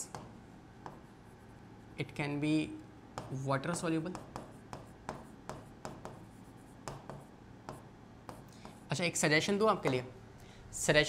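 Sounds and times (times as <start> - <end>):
pen writing on a board: 0.1 - 1.5, 3.2 - 8.9.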